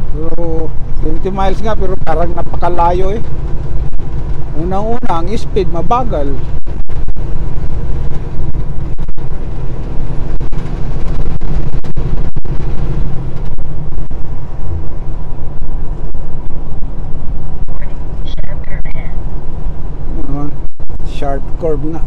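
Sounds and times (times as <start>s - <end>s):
diesel engine drone: 0.0s - 22.0s
road and wind noise: 0.0s - 22.0s.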